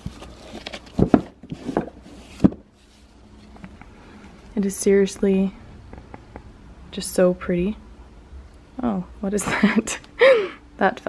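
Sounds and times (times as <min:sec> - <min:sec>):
book scraping against books: 0:00.0 - 0:03.7.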